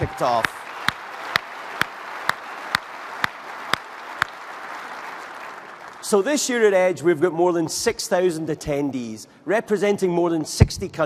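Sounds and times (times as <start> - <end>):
single loud hand claps: 0.0 - 4.6
audience applauding: 0.0 - 6.2.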